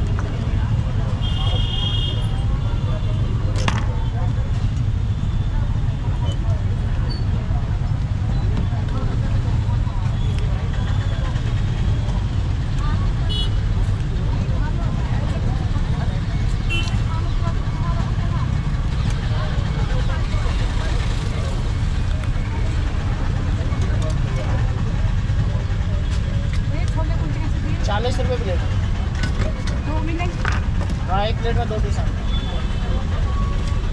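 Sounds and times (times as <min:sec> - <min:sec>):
street noise rumble: 0:00.0 - 0:33.9.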